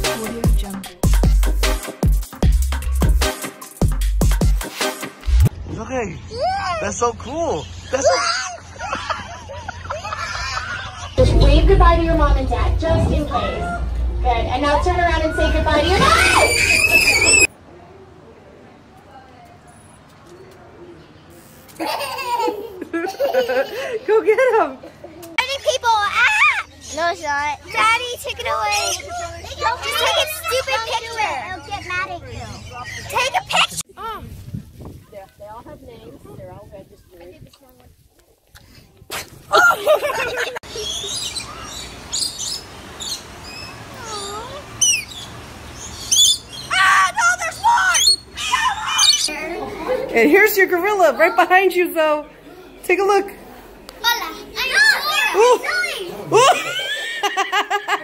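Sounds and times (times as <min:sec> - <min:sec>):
small child laughing loudly: 0:08.0 - 0:11.2, 0:16.1 - 0:17.5, 0:21.8 - 0:24.0, 0:39.5 - 0:41.0, 0:56.3 - 0:58.0
parrot chirping and screeching: 0:15.4 - 0:17.5, 0:40.7 - 0:49.3.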